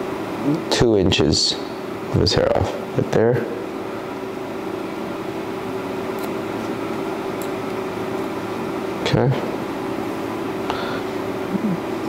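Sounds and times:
fan humming: 0:00.0 - 0:12.0
hair-cutting shears snipping: 0:06.1 - 0:06.8.

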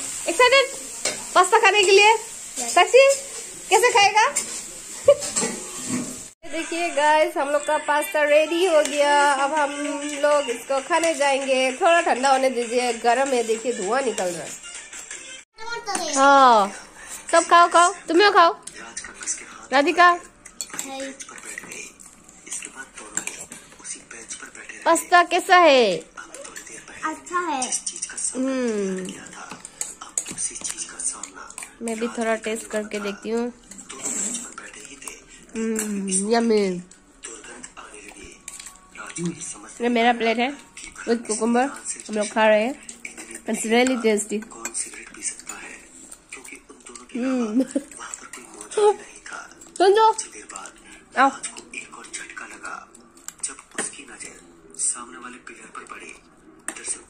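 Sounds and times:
metal spoons clinking in bowls: 0:01.0 - 0:02.0, 0:05.2 - 0:06.0, 0:20.2 - 0:23.7, 0:29.0 - 0:37.0, 0:38.2 - 0:39.6, 0:40.6 - 0:52.6
spoons clinking on steel bowls: 0:01.0 - 0:02.0, 0:04.3 - 0:06.0, 0:20.3 - 0:21.9, 0:40.6 - 0:45.8
child's high-pitched voice: 0:15.6 - 0:16.2.

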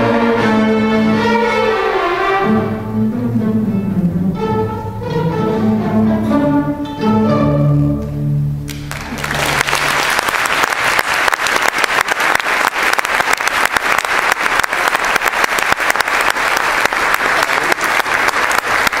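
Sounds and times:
audience applauding: 0:08.7 - 0:19.0.

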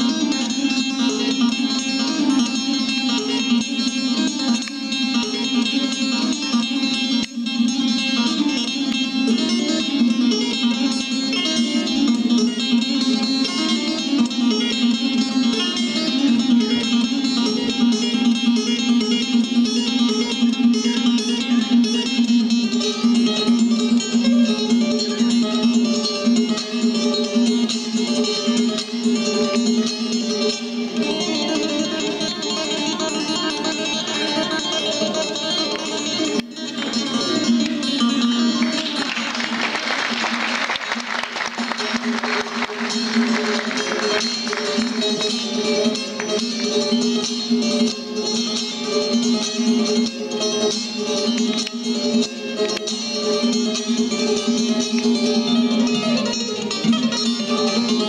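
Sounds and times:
plucked lute melody with drone: 0:00.0 - 0:58.0.

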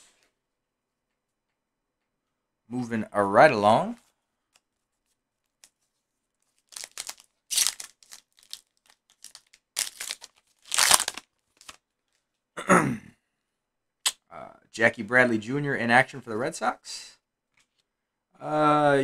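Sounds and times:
foil pack ripping and crinkling: 0:06.5 - 0:11.8.

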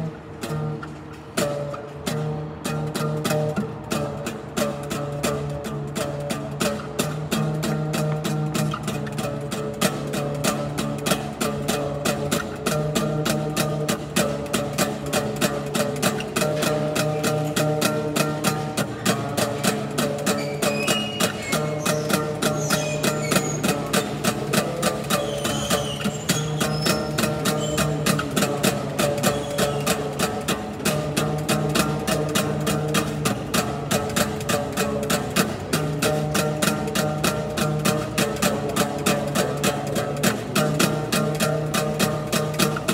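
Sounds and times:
acoustic guitar strumming: 0:00.0 - 0:42.9.

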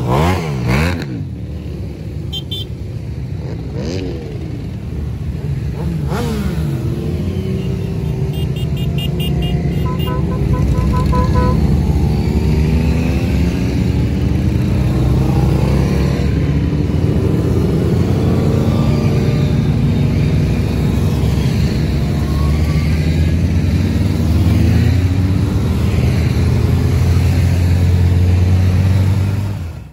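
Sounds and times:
motorcycles riding past: 0:00.0 - 0:29.9
deep engine close by: 0:03.4 - 0:29.9.

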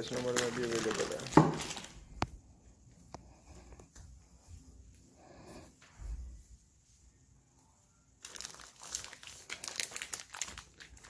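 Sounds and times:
plastic wrapping crinkling: 0:00.0 - 0:02.2, 0:08.2 - 0:11.0.

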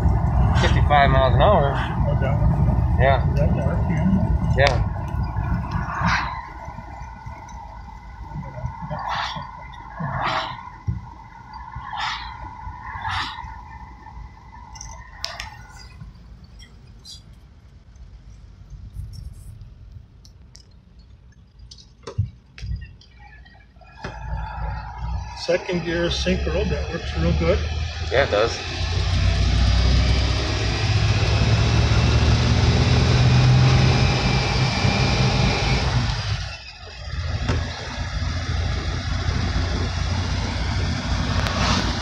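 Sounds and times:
supercharger whine: 0:00.0 - 0:17.3, 0:23.6 - 0:42.0
car engine rumble: 0:00.0 - 0:42.0.

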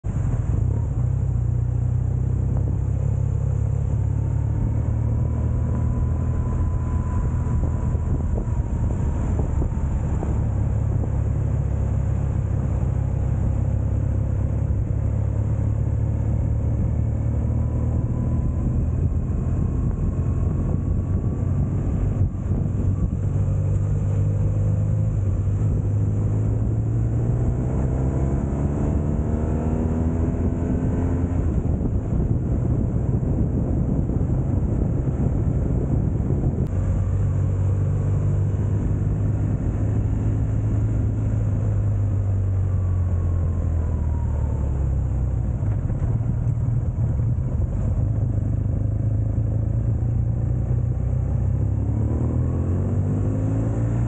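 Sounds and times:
motorcycle engine running: 0:00.0 - 0:52.0
road and wind noise: 0:00.0 - 0:54.0.

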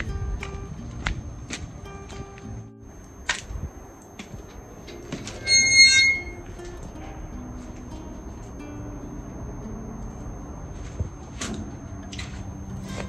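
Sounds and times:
soft background music: 0:00.0 - 0:05.5, 0:06.3 - 0:13.0
gate hinges squealing: 0:04.9 - 0:07.1.

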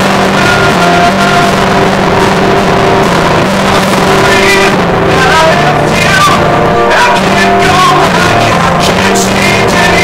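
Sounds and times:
distorted acoustic guitar strumming: 0:00.0 - 0:10.0.

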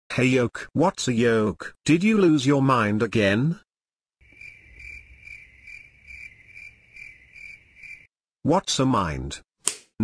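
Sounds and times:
crickets chirping: 0:04.2 - 0:08.1.

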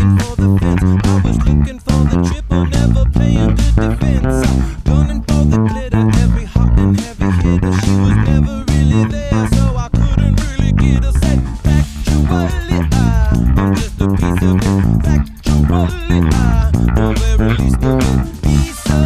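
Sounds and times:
funk bass guitar line: 0:00.0 - 0:19.0
drums keeping steady beat: 0:02.8 - 0:19.0.

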